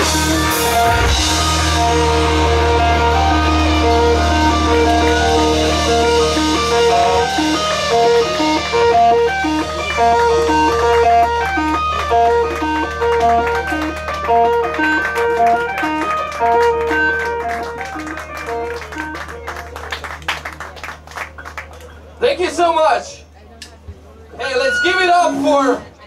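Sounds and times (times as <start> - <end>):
low drone: 0.0 - 20.0
electric guitar picked melody: 0.0 - 20.4.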